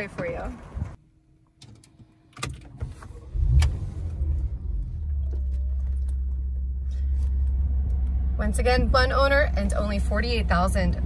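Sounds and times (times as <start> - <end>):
car engine starting and idling: 0.0 - 11.0.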